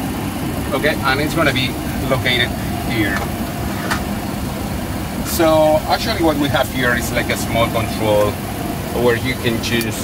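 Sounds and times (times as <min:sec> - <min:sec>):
aircraft systems rumble: 0:00.0 - 0:10.0.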